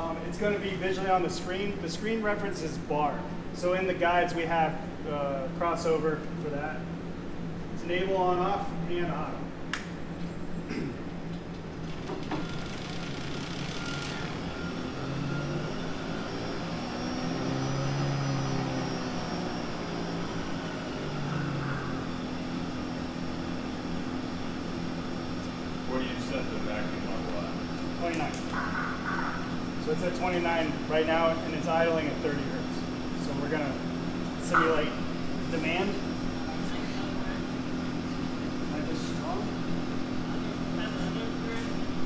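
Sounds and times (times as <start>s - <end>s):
vacuum pump motor hum: 0.0s - 42.0s.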